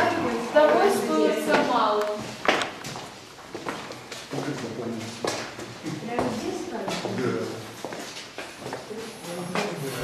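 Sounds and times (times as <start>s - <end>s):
group of people talking: 0.0s - 3.2s, 4.2s - 10.0s
footsteps on walkway: 1.4s - 9.8s.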